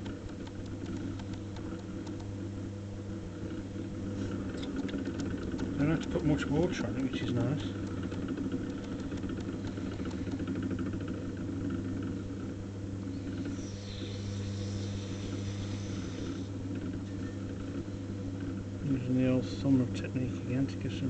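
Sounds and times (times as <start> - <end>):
potter's wheel motor humming: 0.0 - 21.0.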